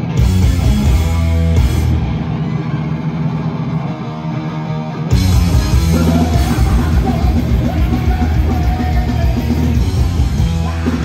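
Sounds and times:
distorted guitars and bass chord: 0.0s - 11.0s
higher guitar notes: 0.0s - 11.0s.

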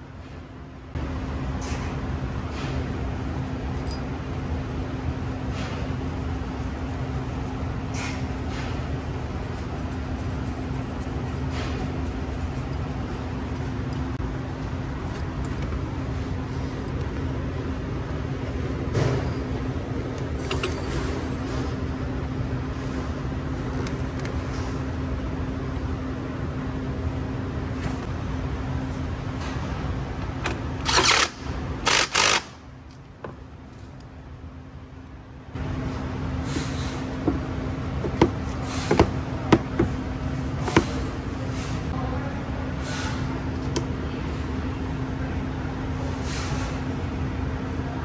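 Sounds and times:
low background hum: 0.0s - 48.0s.

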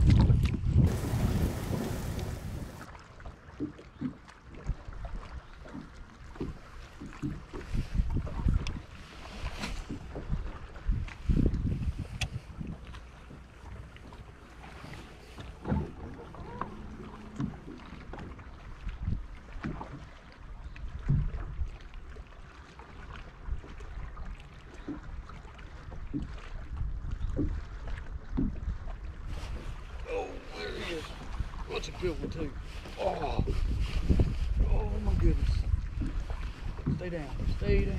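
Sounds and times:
low wind rumble on microphone: 0.0s - 2.9s, 6.3s - 13.9s, 14.8s - 20.0s, 20.6s - 22.2s, 23.3s - 37.9s
wind gusting on microphone: 0.0s - 2.9s, 9.8s - 12.9s, 29.2s - 37.9s
water lapping against boat: 0.0s - 37.9s.

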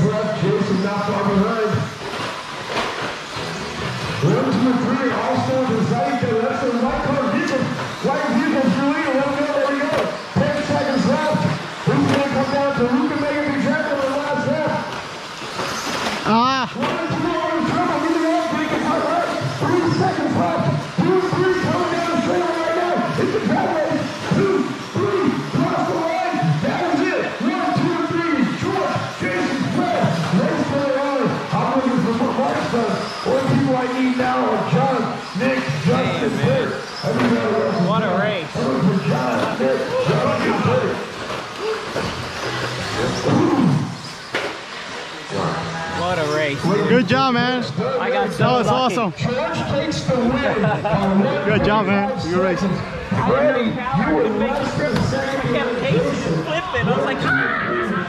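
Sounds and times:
man commentating: 0.0s - 2.0s, 4.2s - 14.9s, 16.4s - 41.8s, 45.3s - 58.0s
people talking: 0.0s - 2.0s, 3.4s - 15.1s, 16.2s - 42.1s, 42.7s - 44.1s, 44.9s - 58.0s.

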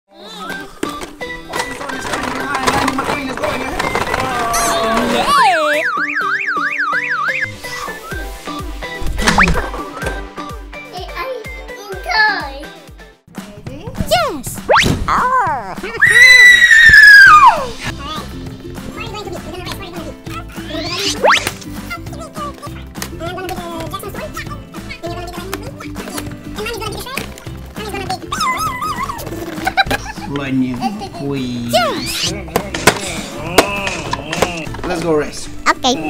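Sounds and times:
music with voice-like sounds: 7.4s - 16.3s, 17.5s - 36.0s
cartoon boing and slide whistle: 20.8s - 21.5s.

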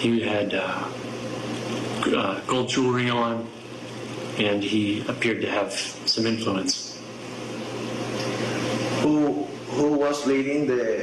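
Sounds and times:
noise: 0.0s - 11.0s.

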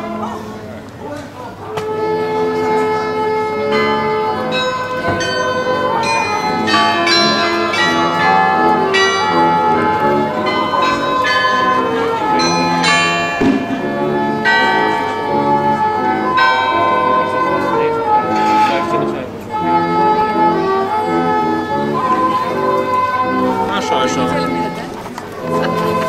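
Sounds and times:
church bells playing a tune: 2.0s - 26.0s.

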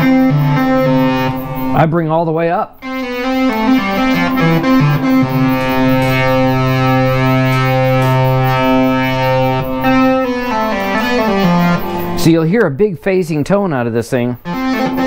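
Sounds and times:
analog synthesizer sustained notes: 0.0s - 2.1s, 2.8s - 12.5s, 14.4s - 15.0s.

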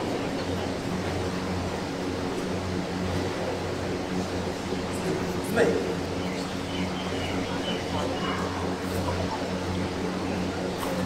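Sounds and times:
electric fans humming: 0.0s - 11.0s.

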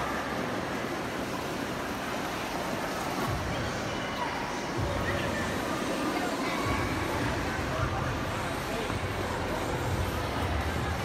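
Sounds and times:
voices of skaters: 0.0s - 11.0s.

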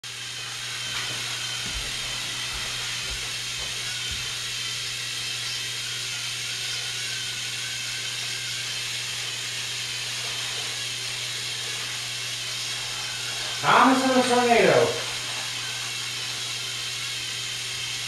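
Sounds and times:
toy trains motors whirring: 0.0s - 18.0s.

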